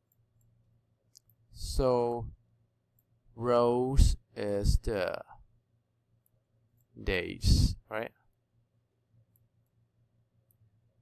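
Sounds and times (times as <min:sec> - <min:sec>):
man's voice: 0:01.6 - 0:02.4, 0:03.4 - 0:05.3, 0:07.0 - 0:08.1.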